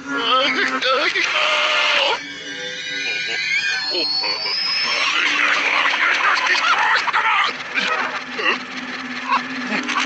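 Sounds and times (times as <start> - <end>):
squeaky creature voices: 0.0 - 10.0
cartoon sound effects: 0.2 - 8.1.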